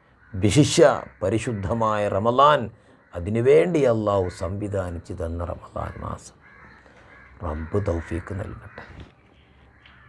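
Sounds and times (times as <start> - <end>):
crows cawing: 0.0 - 10.0
man speaking: 0.4 - 6.4, 7.4 - 9.0.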